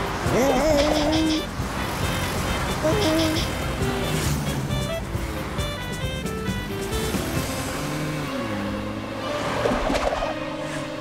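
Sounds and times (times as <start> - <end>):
background music: 0.0 - 11.0
cartoon traffic rumble: 0.0 - 11.0.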